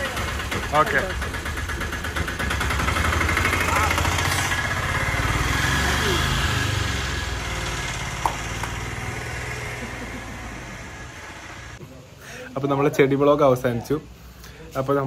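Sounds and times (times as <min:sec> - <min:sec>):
truck engine running: 0:00.0 - 0:11.8
voices: 0:03.2 - 0:05.2.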